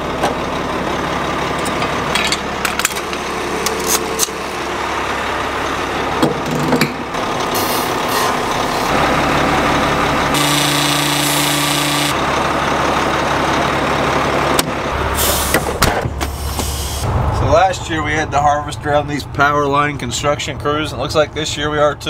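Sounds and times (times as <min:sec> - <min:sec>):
fuel pump running: 0:00.0 - 0:17.1
truck engine running: 0:00.0 - 0:22.0.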